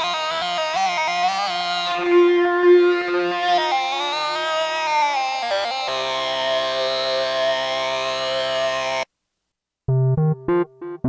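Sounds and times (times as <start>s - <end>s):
synthesizer lead sliding notes: 9.9s - 11.0s.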